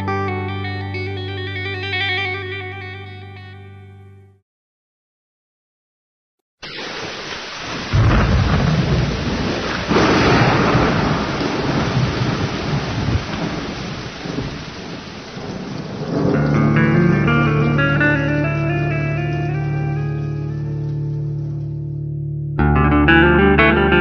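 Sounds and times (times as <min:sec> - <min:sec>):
thunder rolling: 0:06.6 - 0:18.2
heavy rain: 0:06.6 - 0:21.5
instrumental music sustained tones: 0:16.4 - 0:24.0.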